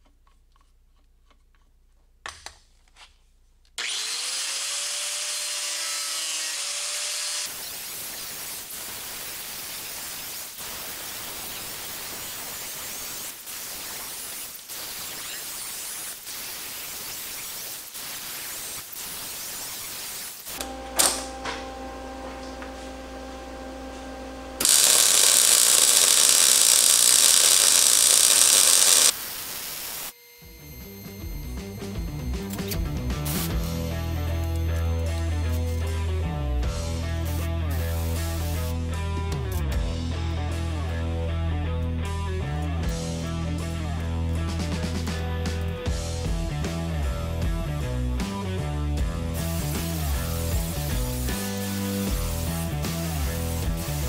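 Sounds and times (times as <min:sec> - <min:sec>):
angle grinder grinding steel: 0:03.8 - 0:08.7, 0:20.5 - 0:36.0
welder humming: 0:03.8 - 0:35.9, 0:49.3 - 0:54.0
arc welding crackling hiss: 0:05.6 - 0:21.2, 0:24.6 - 0:30.3, 0:37.2 - 0:38.8, 0:49.4 - 0:54.0.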